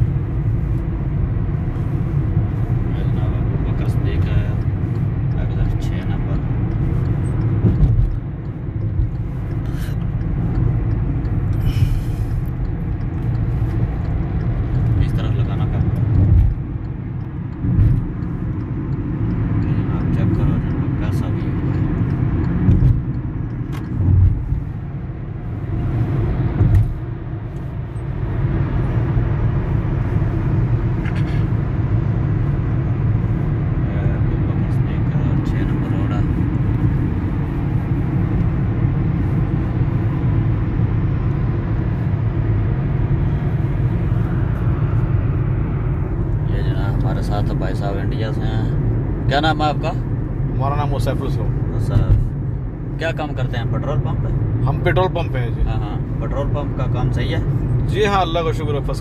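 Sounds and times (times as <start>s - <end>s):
car engine and tyre rumble: 0.0s - 59.0s.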